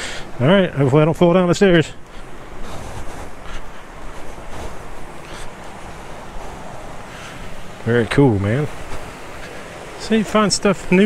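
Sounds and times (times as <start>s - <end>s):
water rushing over dam: 0.0s - 11.0s
wind on microphone: 2.0s - 10.0s.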